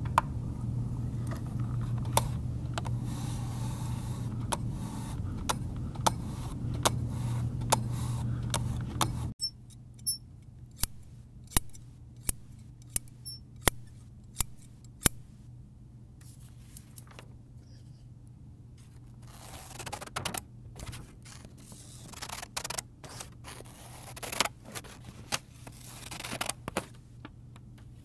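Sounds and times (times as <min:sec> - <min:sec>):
low steady hum: 0:00.0 - 0:22.2
scissors snipping paper: 0:19.2 - 0:26.6.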